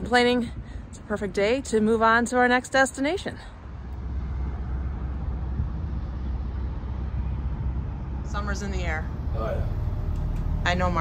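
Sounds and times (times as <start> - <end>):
diesel engine rumbling: 0.0 - 11.0.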